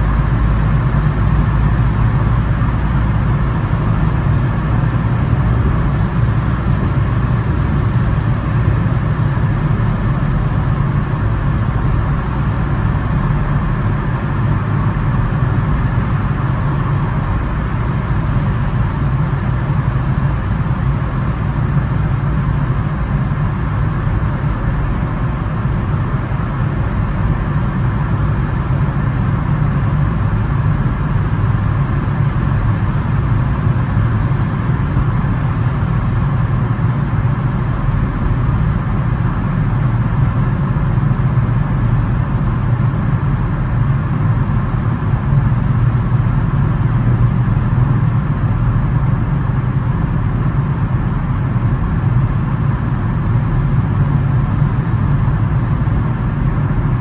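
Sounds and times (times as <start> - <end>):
car road noise drone: 0.0 - 57.0.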